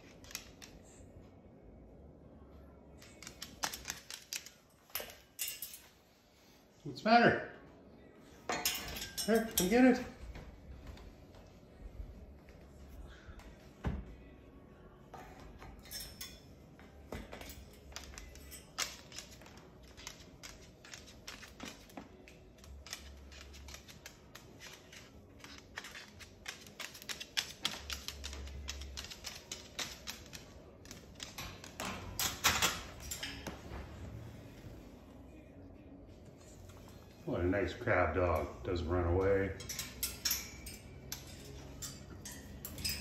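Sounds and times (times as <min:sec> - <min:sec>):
bird claws clicking on wood floor: 0:22.6 - 0:32.7.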